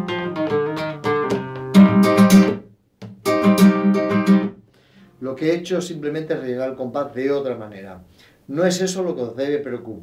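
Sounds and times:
flamenco guitar playing: 0:00.0 - 0:05.2.

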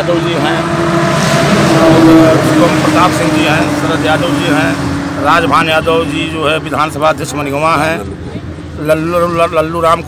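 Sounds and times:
vehicle passing by: 0:00.0 - 0:10.0.

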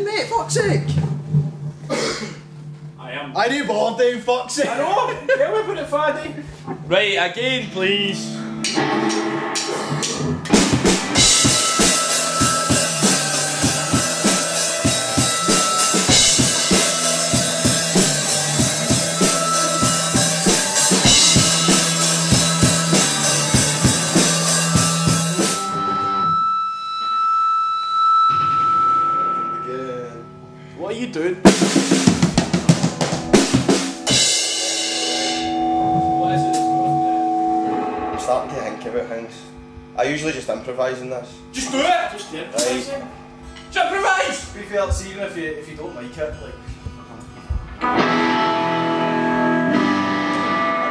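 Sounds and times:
held electric guitar notes: 0:06.8 - 0:30.8, 0:32.0 - 0:40.0, 0:46.6 - 0:50.9
rock band playing: 0:07.4 - 0:26.9, 0:31.4 - 0:39.9, 0:47.7 - 0:50.9
drum kit beat: 0:08.2 - 0:26.0, 0:31.4 - 0:39.0.

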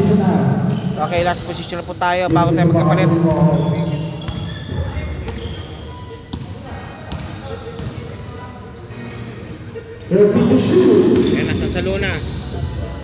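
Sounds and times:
voices echoing in hall: 0:00.0 - 0:13.0.

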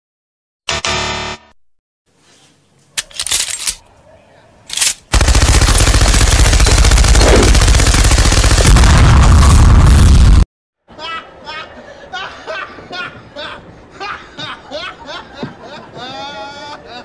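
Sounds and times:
machine-gun fire: 0:04.8 - 0:10.4.

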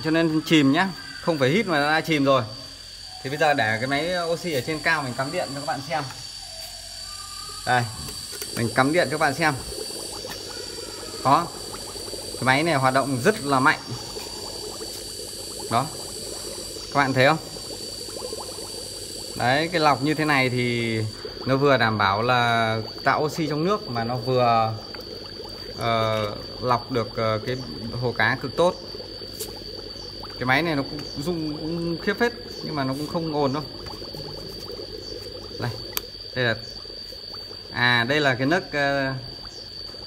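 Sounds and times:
air bubbling through water: 0:00.6 - 0:40.0.

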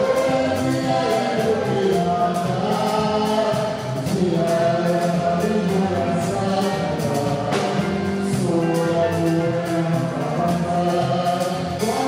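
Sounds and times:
group singing gospel music: 0:00.0 - 0:12.0.

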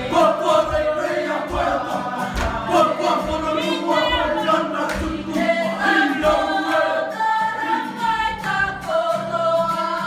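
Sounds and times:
group of voices singing: 0:00.0 - 0:10.0.

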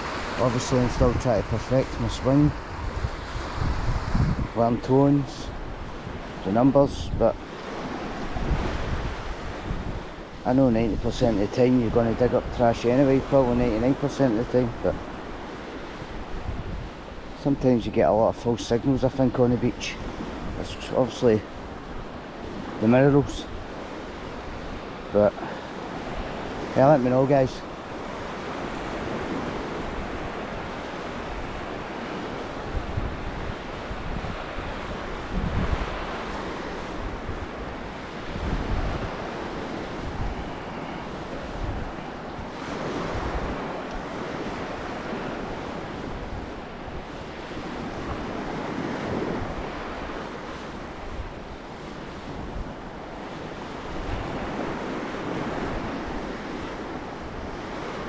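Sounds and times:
sea waves breaking on beach: 0:00.0 - 0:58.0
wind on microphone: 0:00.0 - 0:58.0.

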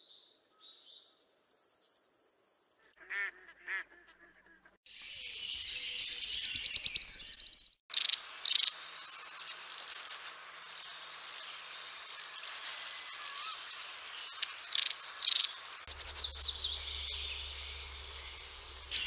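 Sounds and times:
songbirds singing: 0:04.6 - 0:19.0
faint steady hiss: 0:07.9 - 0:19.0
bird trill: 0:14.3 - 0:19.0.

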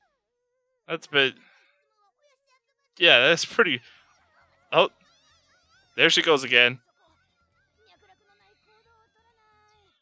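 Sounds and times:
man exclaiming: 0:00.9 - 0:01.3, 0:03.0 - 0:03.8, 0:06.0 - 0:06.8
faint high-pitched soundtrack: 0:06.0 - 0:06.8.

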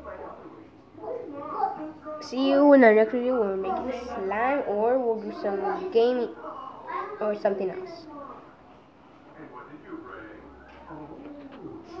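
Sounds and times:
child making wordless sounds: 0:01.0 - 0:08.4.

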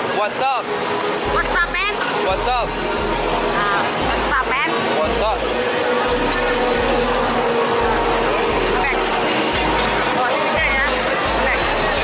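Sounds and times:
loud street noise: 0:00.0 - 0:12.0.

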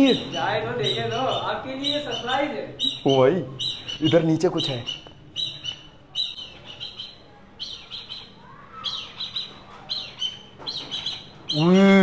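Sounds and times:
bird high chirping calls: 0:00.0 - 0:12.0.

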